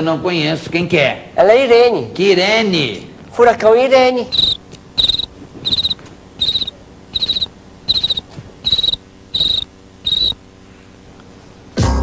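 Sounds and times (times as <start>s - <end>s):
cricket chirping: 4.3s - 10.4s.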